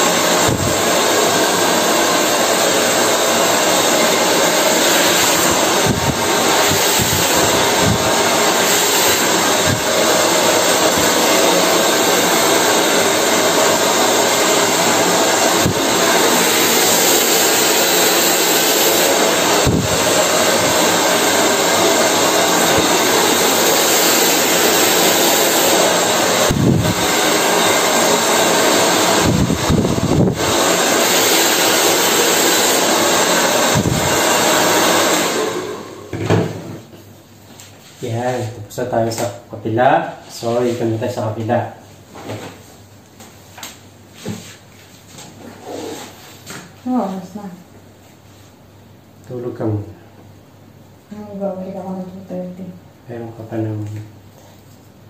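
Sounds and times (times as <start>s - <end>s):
hair dryer blowing: 0.0s - 37.0s, 45.4s - 47.3s.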